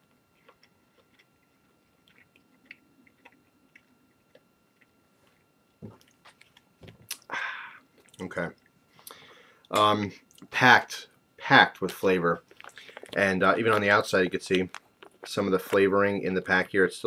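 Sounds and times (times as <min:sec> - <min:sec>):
person chewing: 0:00.0 - 0:07.3, 0:12.4 - 0:13.9, 0:14.6 - 0:15.8.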